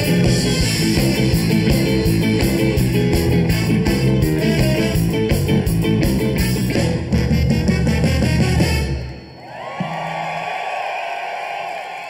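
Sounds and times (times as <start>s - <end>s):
ska band playing: 0.0s - 10.2s
crowd cheering and screaming: 9.2s - 12.0s.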